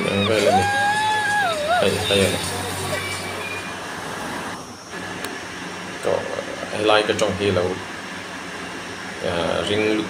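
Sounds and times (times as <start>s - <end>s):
group shout: 0.0s - 2.1s
outdoor background noise: 0.0s - 10.0s.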